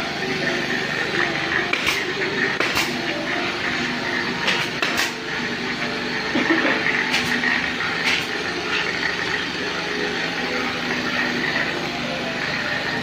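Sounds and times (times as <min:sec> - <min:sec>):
workshop background noise: 0:00.0 - 0:13.0.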